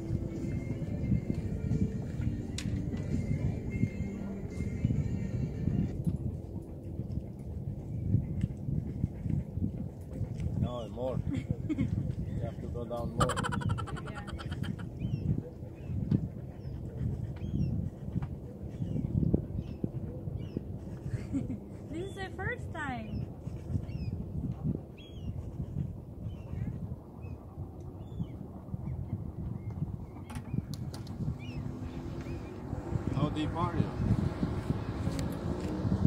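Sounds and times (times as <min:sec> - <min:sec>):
steady low rumble: 0:00.0 - 0:36.0.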